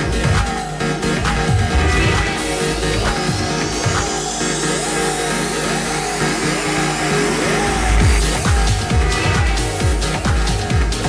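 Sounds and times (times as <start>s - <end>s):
deep bass: 0.0s - 11.0s
electronic trance music: 0.0s - 11.0s.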